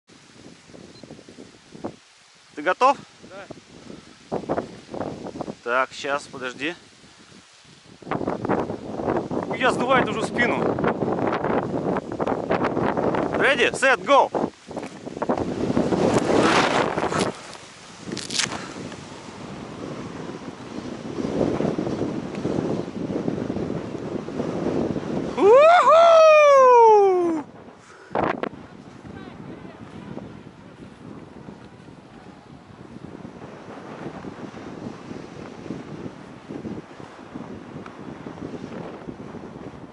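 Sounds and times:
wind buffeting microphone: 0:00.1 - 0:39.9
rustling: 0:14.4 - 0:19.4
person yelling high-pitched: 0:25.4 - 0:27.4.

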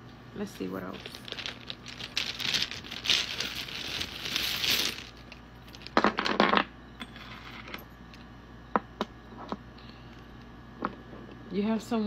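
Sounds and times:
dice clattering on wooden table: 0:05.7 - 0:07.8.

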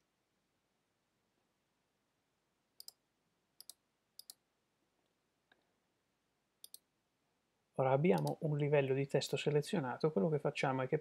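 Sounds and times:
computer mouse clicking: 0:03.6 - 0:04.4, 0:06.6 - 0:06.9, 0:08.2 - 0:08.4.

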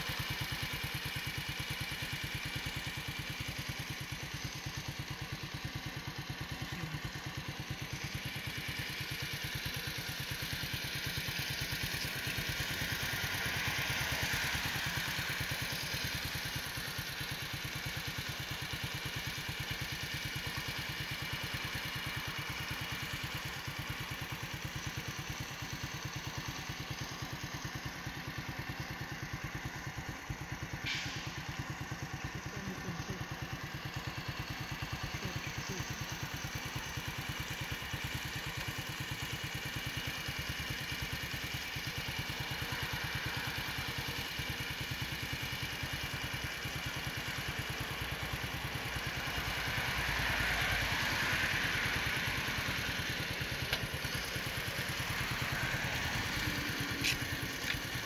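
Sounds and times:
engine idling: 0:00.0 - 0:58.0
hiss: 0:30.8 - 0:31.6.

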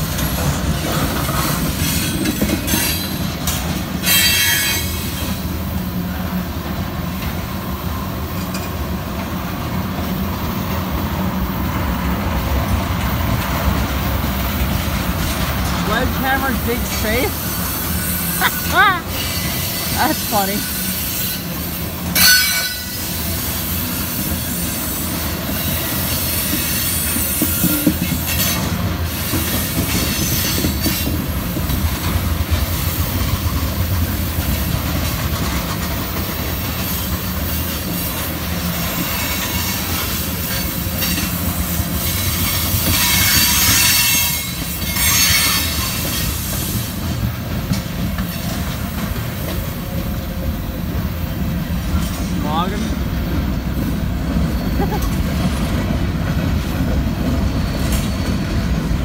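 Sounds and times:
train wheels rumbling on rail: 0:00.0 - 0:59.0
wheel squeal and screeching: 0:04.0 - 0:05.4.

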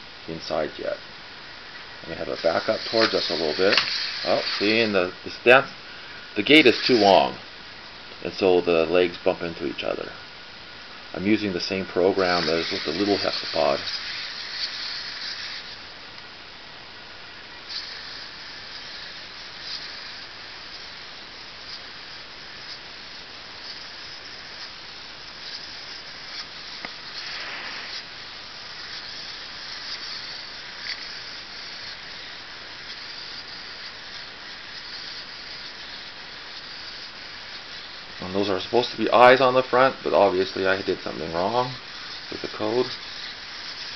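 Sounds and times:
robot servos whirring: 0:02.2 - 0:05.0, 0:12.1 - 0:15.8, 0:23.6 - 0:43.9.

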